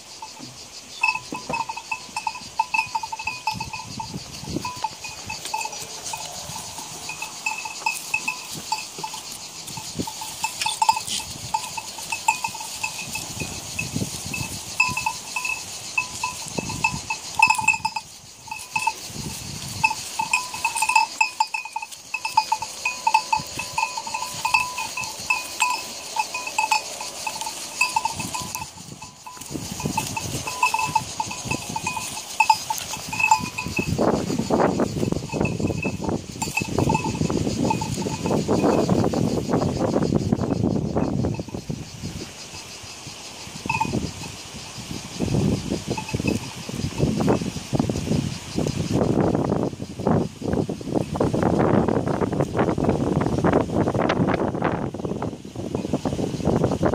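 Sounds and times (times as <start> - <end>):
goat bell jangling: 0.0 - 41.7, 43.4 - 47.9.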